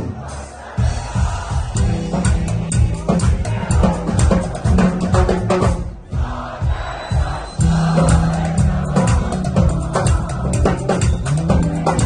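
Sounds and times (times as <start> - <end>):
drum kit beat: 0.0 - 12.0
live band playing: 0.0 - 12.0.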